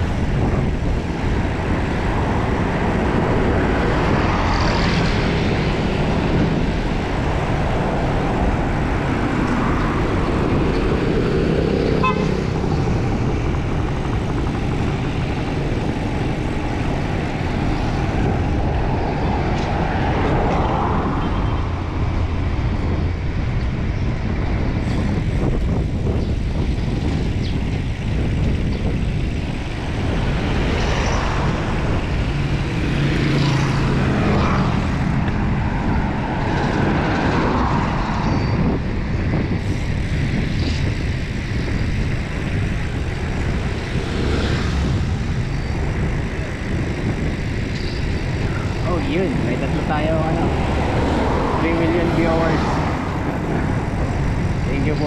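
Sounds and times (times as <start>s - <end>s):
passing cars and motorcycles: 0.0s - 55.0s
wind rushing over microphone: 0.0s - 55.0s.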